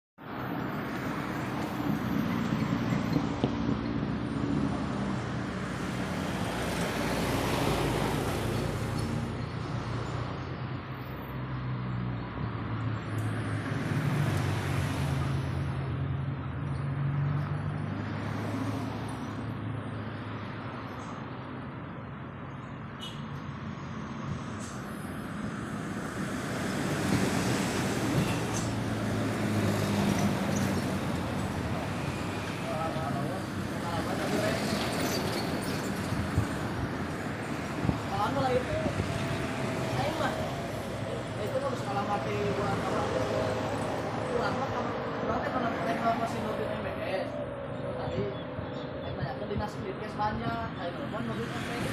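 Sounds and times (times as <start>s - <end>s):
tyre and road noise: 0.2s - 51.9s
vehicle engines humming: 0.2s - 51.9s.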